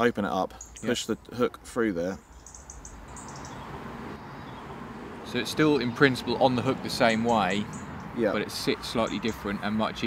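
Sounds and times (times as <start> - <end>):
small bird chirps: 0.5 - 1.2, 2.2 - 4.8, 7.3 - 8.2.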